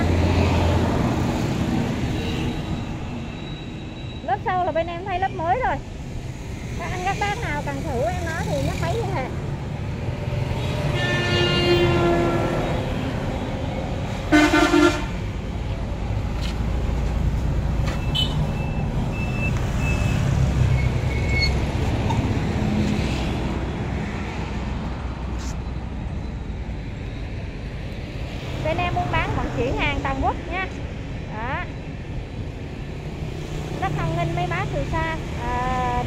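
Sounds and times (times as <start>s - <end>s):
horn honking: 10.6s - 13.1s, 14.3s - 15.2s, 18.0s - 18.5s.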